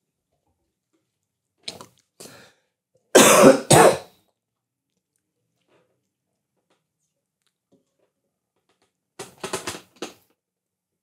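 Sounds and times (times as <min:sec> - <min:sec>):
man coughing: 0:03.2 - 0:04.1.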